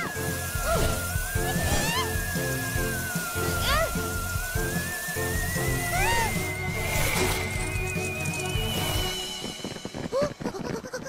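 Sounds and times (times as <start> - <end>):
high electronic tone rising: 0.0 - 10.1
background music: 0.0 - 11.0.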